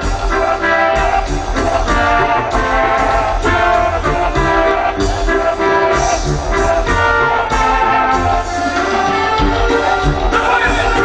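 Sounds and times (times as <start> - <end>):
live band dance music: 0.0 - 11.0.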